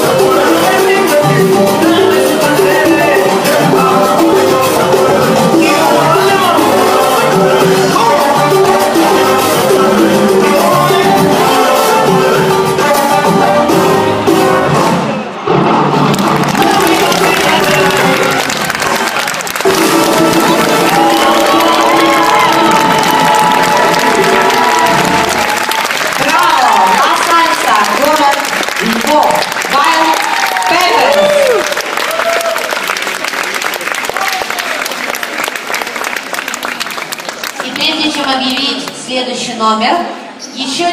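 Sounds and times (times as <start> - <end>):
salsa music: 0.0 - 33.4
audience applauding: 15.9 - 39.0
audience shouts and whoops: 16.2 - 27.0, 29.8 - 33.1.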